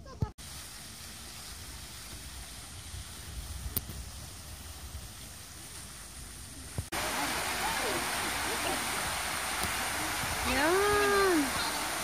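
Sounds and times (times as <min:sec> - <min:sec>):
faint outdoor background noise: 0:00.0 - 0:12.0
wind rumble on microphone: 0:01.4 - 0:06.9, 0:08.6 - 0:12.0.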